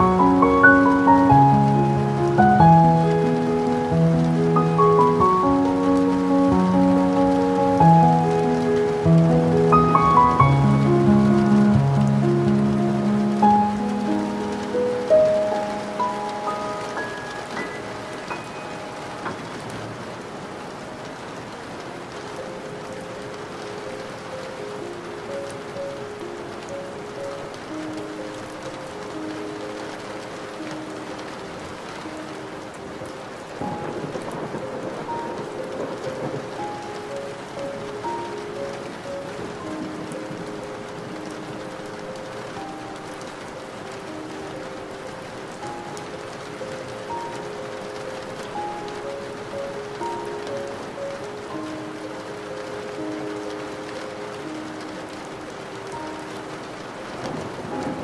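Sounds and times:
soft slow music: 0:00.0 - 0:58.0
steady rain: 0:00.0 - 0:58.0.

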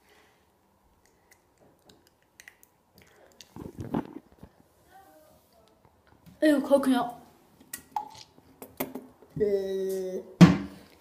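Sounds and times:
boy groaning in disgust: 0:09.4 - 0:10.4.

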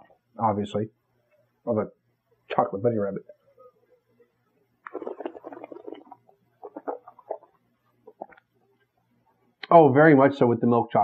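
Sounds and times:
wine slurping in mouth: 0:04.8 - 0:08.4.

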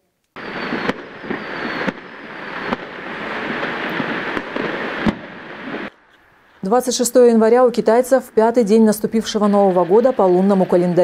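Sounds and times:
sharp firecracker bangs: 0:00.4 - 0:06.0
firecrackers crackling: 0:00.4 - 0:06.7.

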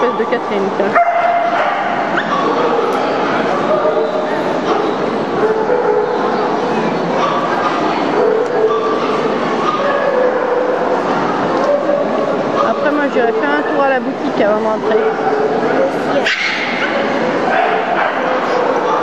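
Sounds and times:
dogs barking and yipping: 0:00.0 - 0:06.6, 0:07.2 - 0:13.9, 0:14.9 - 0:19.0
crowd chatter: 0:00.0 - 0:19.0.

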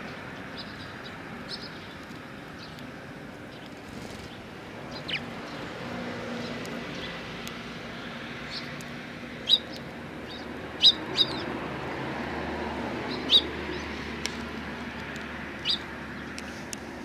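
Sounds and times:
sparrows chirping: 0:00.0 - 0:17.0
steady background noise: 0:00.0 - 0:17.0.

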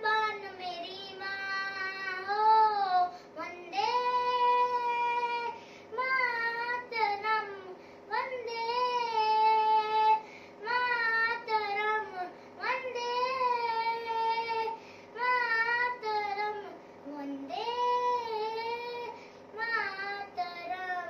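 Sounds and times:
girl singing: 0:00.0 - 0:21.0.

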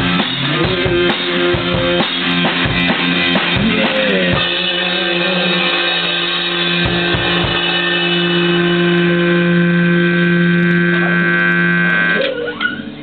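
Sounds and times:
drum hits: 0:00.0 - 0:11.6
electric guitar chord ringing: 0:00.0 - 0:13.0.

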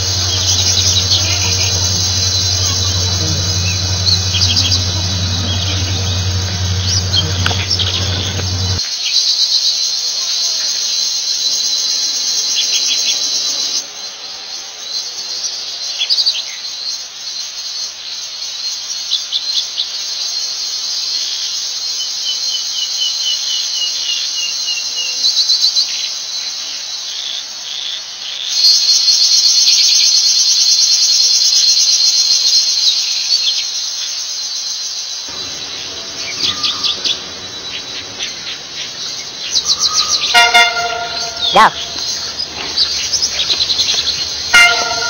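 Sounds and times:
birds chirping and calling: 0:00.0 - 0:08.8, 0:35.3 - 0:45.0
shrill insect chorus: 0:00.0 - 0:08.9, 0:33.7 - 0:45.0.

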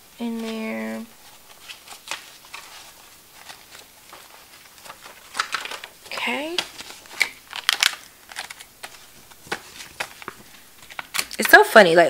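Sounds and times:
paper rustling: 0:00.2 - 0:11.6.

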